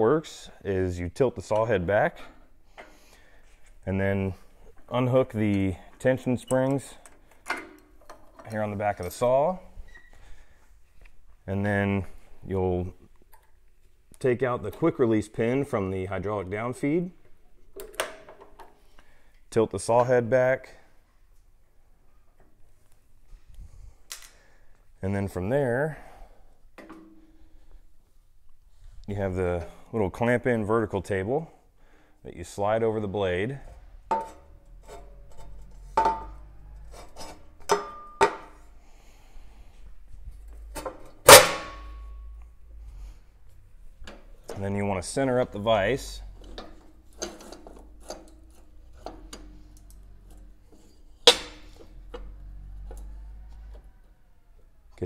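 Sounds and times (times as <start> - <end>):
loud metallic clank: 33.7 - 38.6, 40.8 - 42.4, 51.2 - 51.8
metal vise clicks and knocks: 34.1 - 38.6, 46.4 - 53.1.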